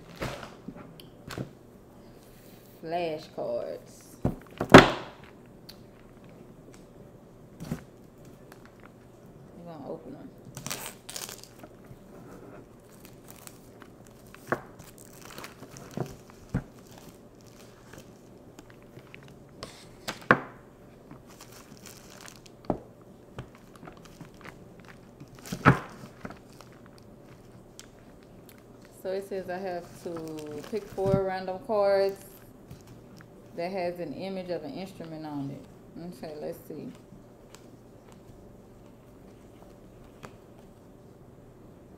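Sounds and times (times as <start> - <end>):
wrapping crinkling and tearing: 10.4 - 12.1, 12.7 - 20.2, 21.1 - 22.7, 23.4 - 33.4.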